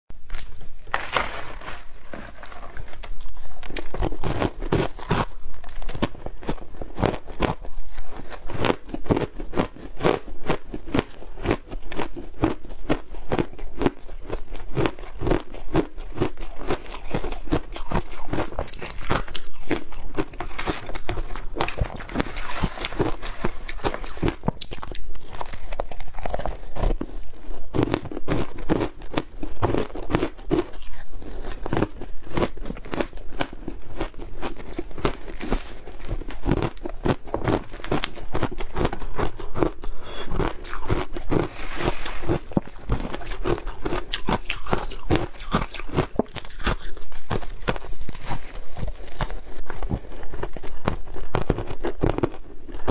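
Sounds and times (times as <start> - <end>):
ice being crunched while chewing: 0.2 - 52.9.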